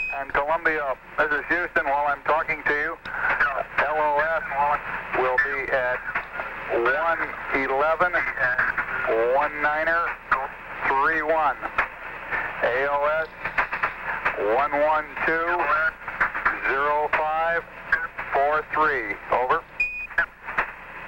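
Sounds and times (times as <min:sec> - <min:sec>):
man talking over radio: 0:00.1 - 0:11.8, 0:12.4 - 0:13.6, 0:14.3 - 0:19.7.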